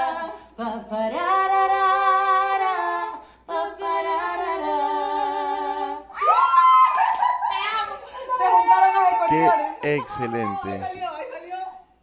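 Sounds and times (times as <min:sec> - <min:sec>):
young women shrieking and laughing: 0:06.2 - 0:09.3.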